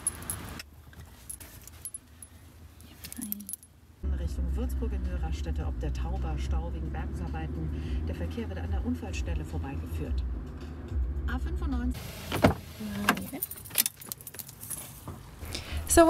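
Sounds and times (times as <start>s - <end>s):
light metallic jingling: 0.0s - 3.9s, 13.2s - 15.0s
car cabin rumble: 11.3s - 16.0s
car door opening: 12.0s - 15.3s.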